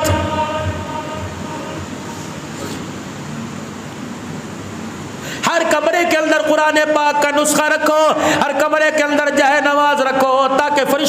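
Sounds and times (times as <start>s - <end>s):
rumbling background noise: 0.0s - 11.0s.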